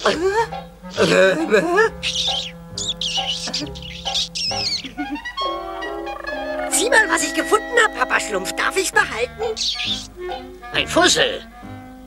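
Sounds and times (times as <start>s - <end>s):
background music: 0.0s - 12.0s
high warbling cartoon chirps: 2.0s - 4.9s, 5.8s - 6.8s, 9.5s - 10.1s.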